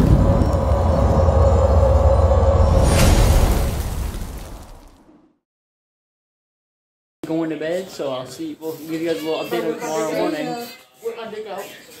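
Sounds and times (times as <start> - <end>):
deep rumble: 0.0 - 5.0.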